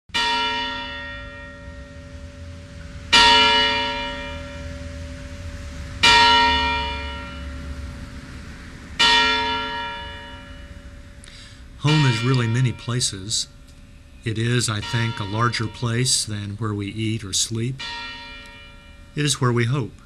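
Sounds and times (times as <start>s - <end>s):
church bell tolling: 0.1s - 20.0s.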